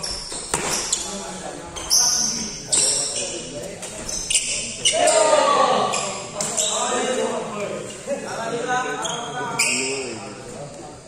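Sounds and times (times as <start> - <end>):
sports shoe squeak: 0.0 - 1.2, 1.8 - 7.2, 9.0 - 10.2
people talking: 0.0 - 11.0.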